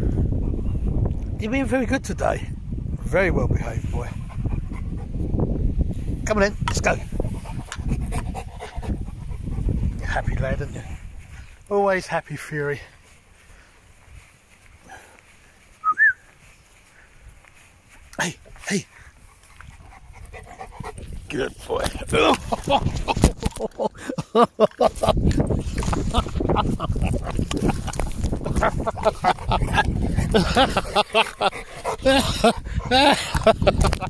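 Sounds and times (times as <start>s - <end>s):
rubbing on fur and grass: 7.0s - 23.3s
person whistling short notes: 15.8s - 16.3s
dog grunting and growling: 28.4s - 33.6s.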